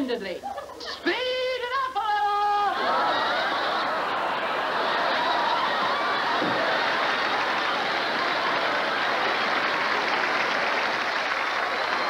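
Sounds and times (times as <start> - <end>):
audience laughing and applauding: 2.6 - 12.0.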